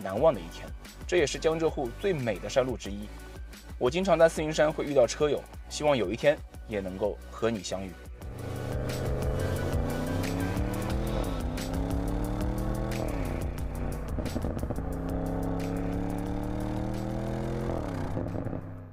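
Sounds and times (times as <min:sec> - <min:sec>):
car engine accelerating: 0:08.2 - 0:18.9.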